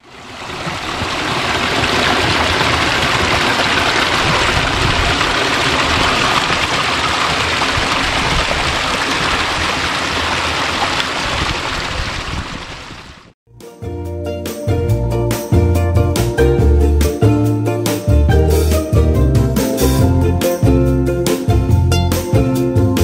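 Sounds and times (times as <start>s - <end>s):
stream splashing over rocks: 0.0s - 13.3s.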